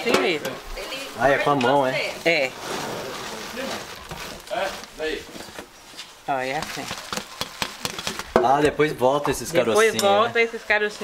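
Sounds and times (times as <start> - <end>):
peanuts rustling on bamboo sieve: 1.0 - 8.3.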